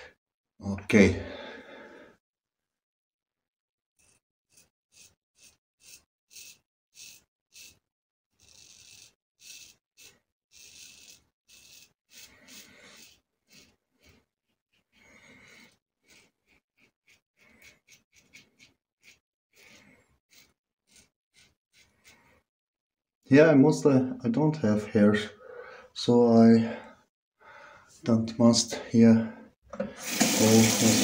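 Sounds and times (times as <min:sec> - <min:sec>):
razor scraping stubble: 0:04.0 - 0:07.8, 0:08.4 - 0:22.4.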